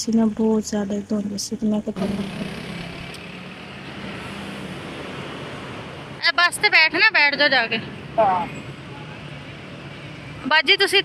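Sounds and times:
road and wind noise in vehicle: 0.0 - 11.0.

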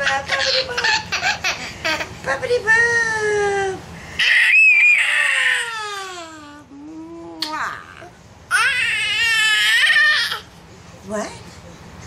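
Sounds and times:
baby squealing: 4.2 - 6.4.

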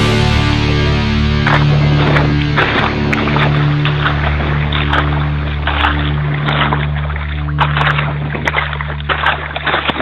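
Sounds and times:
vehicle engine droning: 0.0 - 10.0
water splashing and surging: 0.0 - 10.0.

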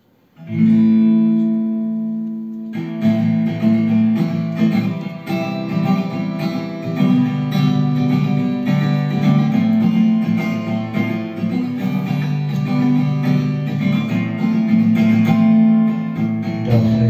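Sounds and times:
acoustic guitar strumming chords: 0.4 - 17.0.

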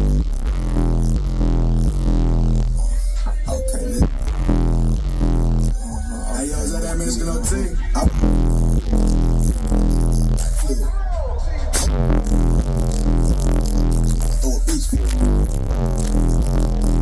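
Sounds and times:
electronic music with deep bass: 0.0 - 17.0.

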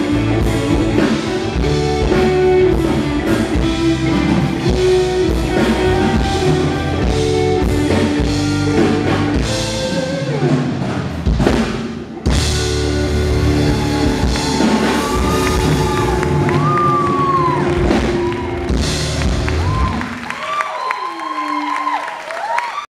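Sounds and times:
bass guitar: 0.0 - 20.3
drum kit: 0.0 - 20.3
live band playing: 0.0 - 20.5.

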